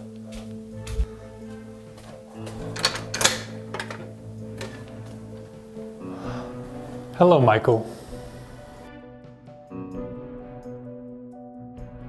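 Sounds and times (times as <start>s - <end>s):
background music with steady chords: 0.0s - 12.0s
door deadbolt and latch clicks: 2.5s - 4.9s.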